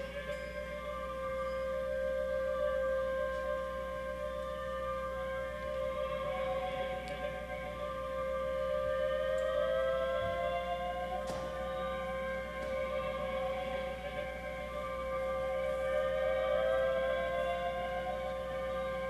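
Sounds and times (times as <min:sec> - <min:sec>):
violin drone note: 0:00.0 - 0:19.0.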